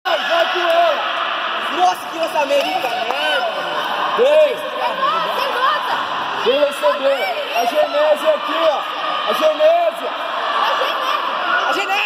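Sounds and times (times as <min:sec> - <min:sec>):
people calling and shouting: 0:00.0 - 0:12.0.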